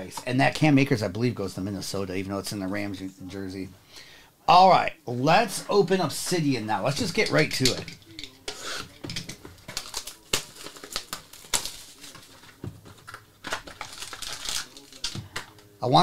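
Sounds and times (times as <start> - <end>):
crinkling: 6.3 - 16.0.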